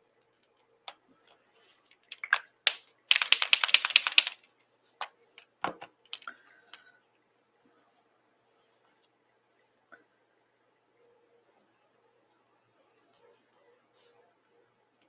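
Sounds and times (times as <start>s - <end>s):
marker mixing ball rattling: 2.0s - 4.4s, 5.7s - 6.3s
paint marker clicks: 2.1s - 4.4s.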